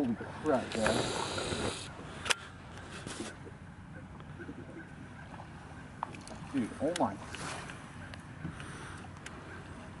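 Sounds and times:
faint wind: 0.0 - 10.0
water noise around boat: 0.0 - 10.0.

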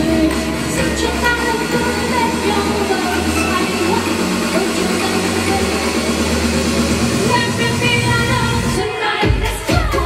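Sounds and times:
bass line: 0.0 - 8.8.

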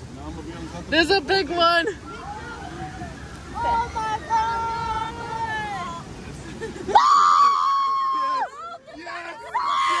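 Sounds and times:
churning water: 0.0 - 10.0.

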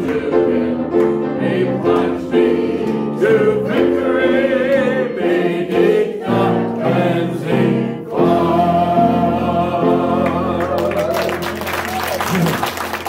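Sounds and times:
gospel singing: 0.0 - 11.7.

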